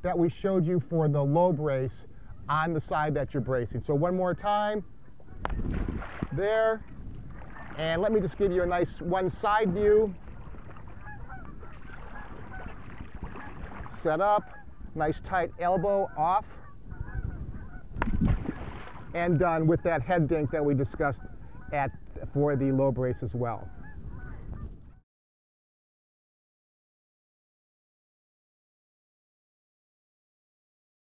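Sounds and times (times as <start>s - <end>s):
faint honking bird calls: 4.1s - 18.0s, 19.0s - 25.0s.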